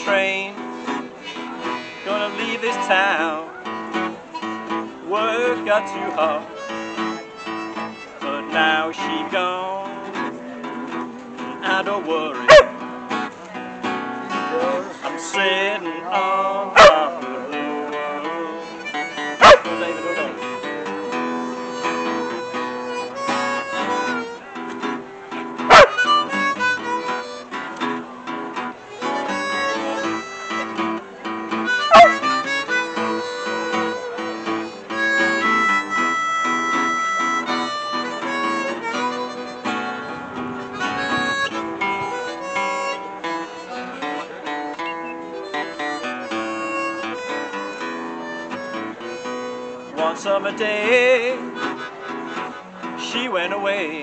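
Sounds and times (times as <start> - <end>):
blues harmonica solo: 0.0 - 9.4, 17.5 - 54.0
strummed acoustic guitars: 0.0 - 54.0
dog barking: 12.5 - 12.8, 16.8 - 17.1, 19.4 - 19.7, 25.7 - 26.0, 31.9 - 32.2.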